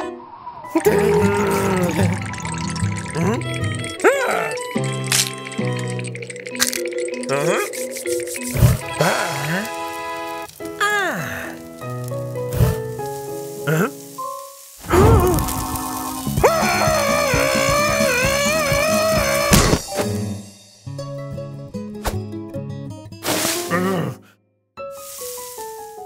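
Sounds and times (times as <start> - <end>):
cartoon music: 0.8 - 11.5, 13.6 - 19.8
cartoon character wavering yell: 16.4 - 19.6.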